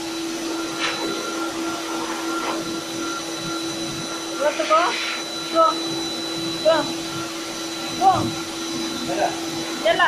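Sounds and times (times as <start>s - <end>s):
electric motor humming: 0.0s - 10.0s.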